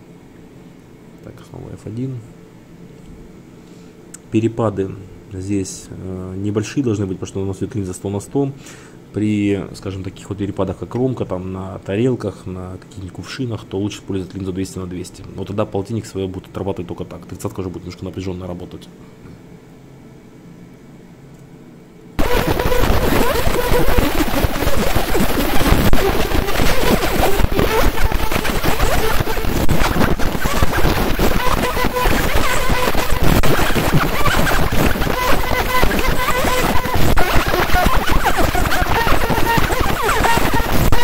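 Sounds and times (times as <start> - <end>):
laser crackling hiss: 22.2 - 41.0.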